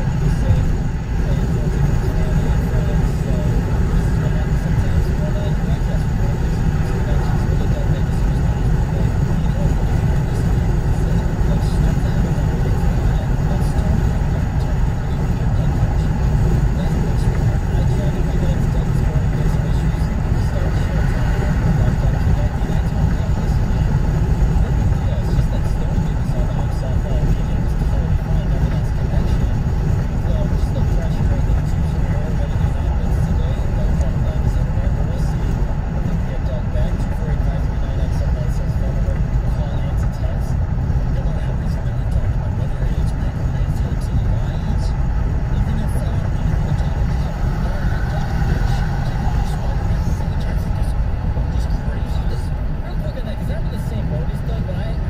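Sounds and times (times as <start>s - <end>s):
car cabin road noise: 0.0s - 55.0s
muffled indistinct voices: 0.0s - 55.0s.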